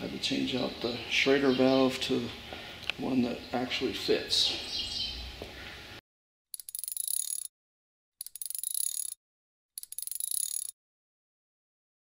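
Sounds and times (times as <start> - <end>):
high-pitched clicking buzz: 6.6 - 7.5, 8.2 - 9.2, 9.8 - 10.7.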